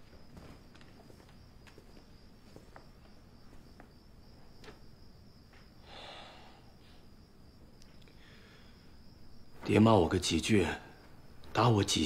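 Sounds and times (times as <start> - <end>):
light footsteps: 0.0 - 5.8
crickets chirring: 0.0 - 12.0.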